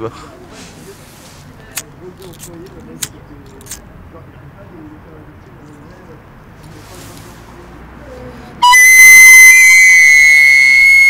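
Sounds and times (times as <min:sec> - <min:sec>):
shrill loud whistle: 0:08.6 - 0:11.0.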